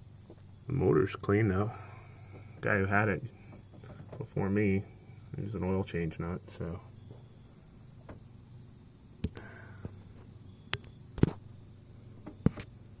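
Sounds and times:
faint low hum: 0.0 - 13.0
sharp clicks and knocks: 8.0 - 8.3, 10.7 - 11.4.

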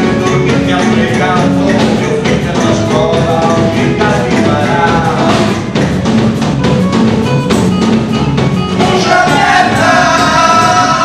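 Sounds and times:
drum kit beat: 0.0 - 11.0
live band playing instrumental: 0.0 - 11.0.

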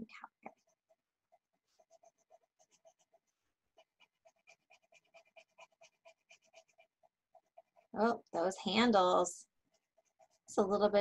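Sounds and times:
pencil scratching on paper: 0.4 - 10.8.

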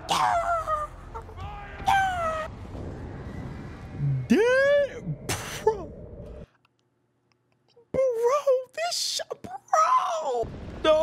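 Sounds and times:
rumbling movie soundtrack: 0.0 - 6.6, 9.9 - 11.0
man yelling excitedly: 8.0 - 11.0.

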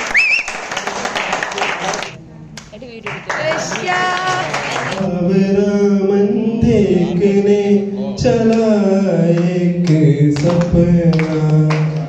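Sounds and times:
man singing into a microphone: 5.0 - 12.0.

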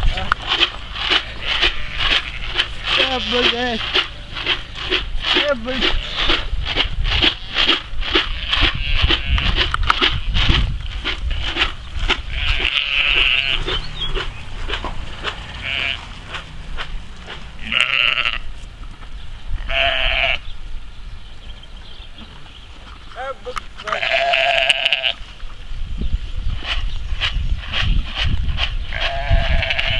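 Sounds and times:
rustling footsteps: 0.0 - 20.3, 21.7 - 25.8
wind rumbling on microphone: 0.0 - 29.9
sheep bleating: 1.1 - 3.5, 8.2 - 9.6, 12.3 - 13.9, 15.4 - 16.2, 17.6 - 18.5, 19.6 - 20.4, 23.8 - 25.2, 28.9 - 29.9.

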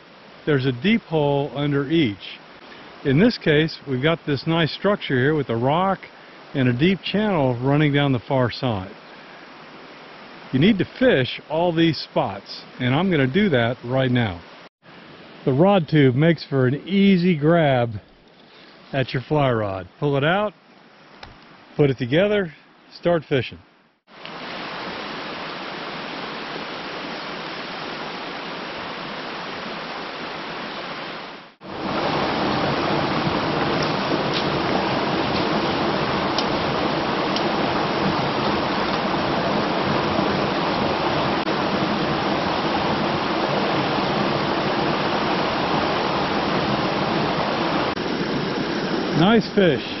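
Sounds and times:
creek rushing over rocks: 0.0 - 18.0, 24.1 - 50.0.

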